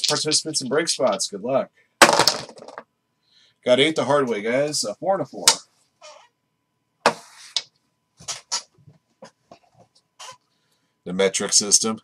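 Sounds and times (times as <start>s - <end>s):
dice clacking on a table: 2.0s - 2.9s.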